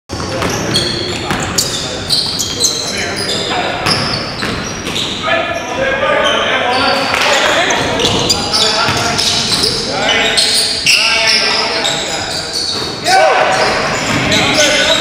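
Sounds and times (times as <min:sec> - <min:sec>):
basketball bouncing: 0:00.1 - 0:01.7, 0:03.8 - 0:05.1, 0:12.7 - 0:14.5
players calling out: 0:00.1 - 0:15.0
sneakers squeaking: 0:00.1 - 0:15.0.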